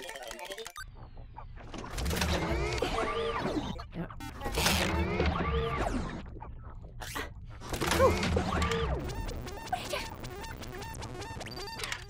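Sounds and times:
cartoon engine sputtering: 7.7 - 12.0.

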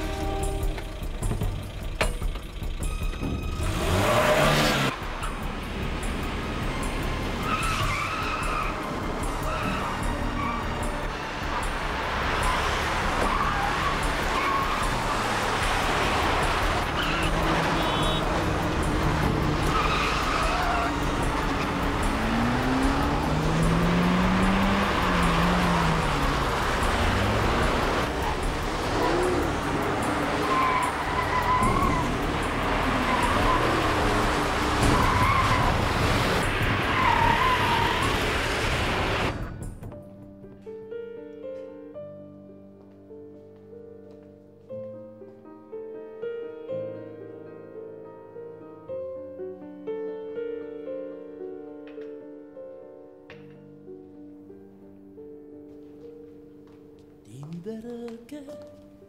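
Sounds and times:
car engines running hard: 0.0 - 39.7
music: 0.0 - 59.0
tyre squeals: 7.4 - 10.8, 16.9 - 18.2, 30.2 - 32.2, 32.9 - 35.9.

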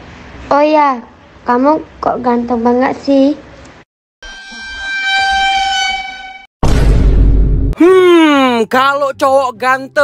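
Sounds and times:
horn-like chord sting: 4.2 - 6.5.

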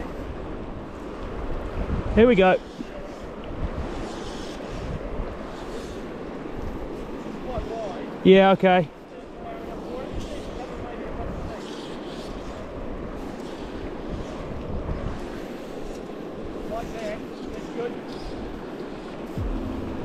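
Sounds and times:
wind buffeting microphone: 0.0 - 7.7, 12.2 - 16.9.

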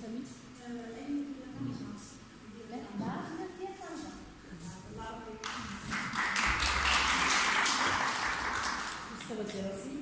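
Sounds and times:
audience applauding: 5.9 - 9.3.

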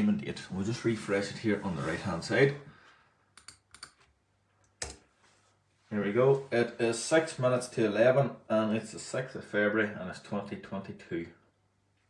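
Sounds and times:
computer key clicks: 3.4 - 4.0.

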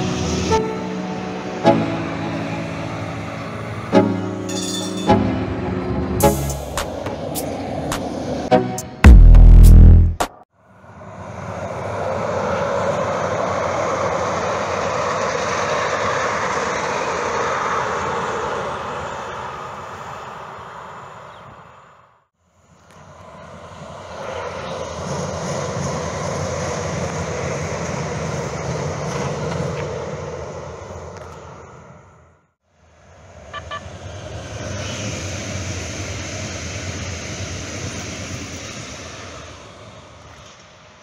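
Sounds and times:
light-rail train passing: 0.0 - 9.0, 10.6 - 41.0.

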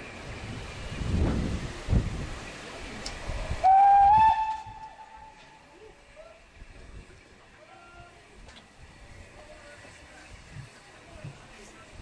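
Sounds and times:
steam hissing: 0.0 - 12.0
steam locomotive exhaust beats: 0.0 - 12.0
steam whistle blast: 3.6 - 5.6.

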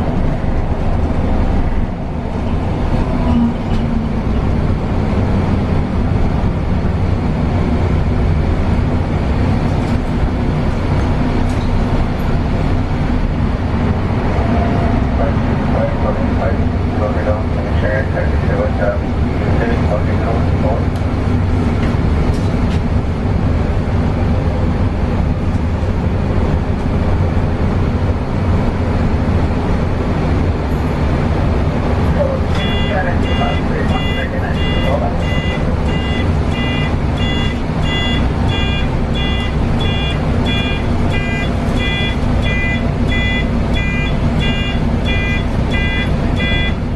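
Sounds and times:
bus engine droning: 0.0 - 46.9
repeating electronic beep: 32.6 - 46.8.

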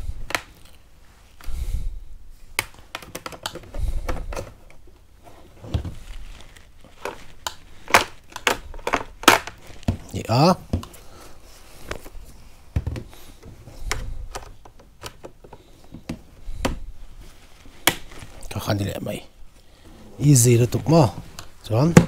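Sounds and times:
plastic helmet visor clicking: 2.6 - 4.8, 7.0 - 10.0, 12.9 - 16.8, 17.8 - 18.2.

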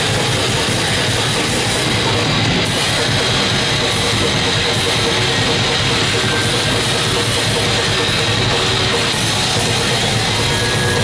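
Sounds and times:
distorted electric guitar: 0.0 - 11.0
drum kit: 0.0 - 11.0.

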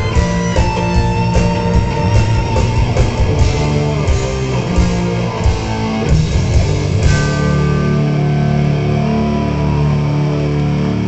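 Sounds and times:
guitar note sliding down: 0.0 - 11.0
heavy metal band playing: 0.0 - 11.0.

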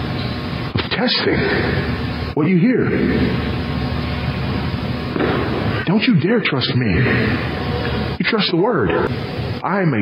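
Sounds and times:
low hum: 0.0 - 9.7.

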